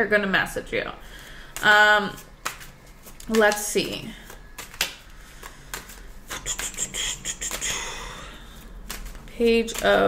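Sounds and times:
cards being shuffled: 1.6 - 10.0.

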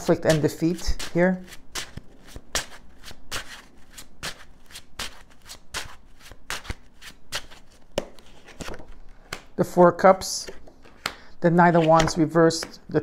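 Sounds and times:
cards being shuffled: 0.0 - 9.6, 10.4 - 13.0.

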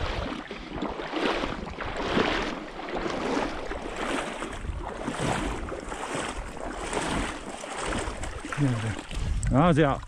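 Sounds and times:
water sloshing from wading: 0.0 - 10.0.

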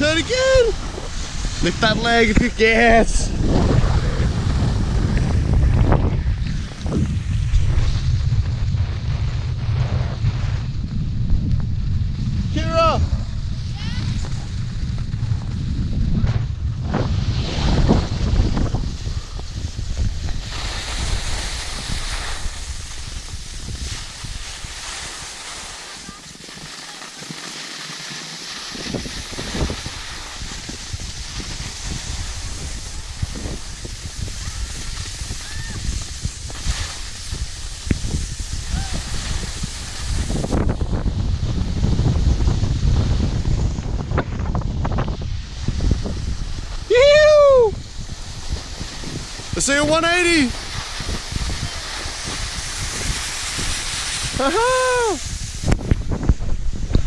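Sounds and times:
wind buffeting microphone: 0.0 - 26.1, 28.6 - 57.0
skis sliding over snow: 0.0 - 57.0.

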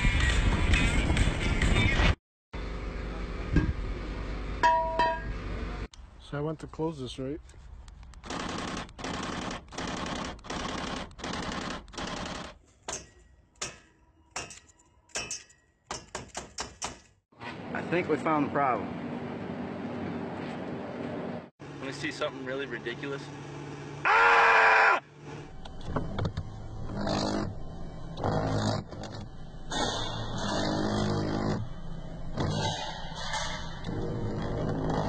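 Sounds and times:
loud scream: 24.0 - 25.1.

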